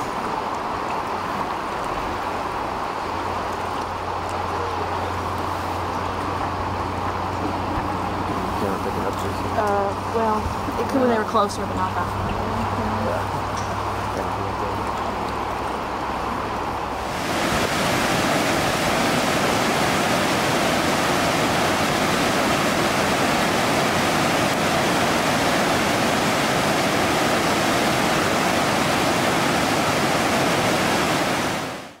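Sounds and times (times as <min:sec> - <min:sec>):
river water rushing over rocks: 0:00.0 - 0:32.0.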